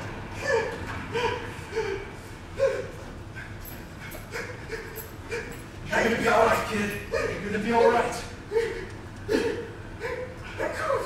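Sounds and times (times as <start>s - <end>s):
person whimpering: 0.4s - 3.5s, 4.1s - 5.6s, 8.5s - 11.0s.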